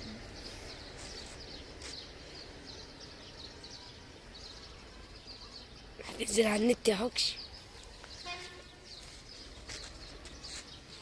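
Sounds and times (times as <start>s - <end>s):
low outdoor background hum: 0.0s - 11.0s
small birds chirping: 0.0s - 11.0s.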